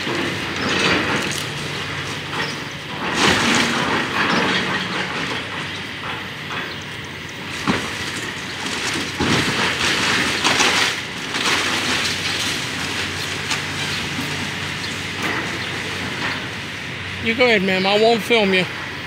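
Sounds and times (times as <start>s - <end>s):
rubble crashing: 0.0s - 16.6s
debris rattling and scraping: 0.0s - 18.7s
excavator engine hum: 0.0s - 19.0s.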